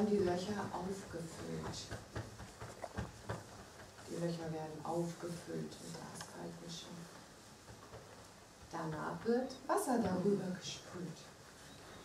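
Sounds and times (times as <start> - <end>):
hands patting on clothed backs: 0.0 - 10.5.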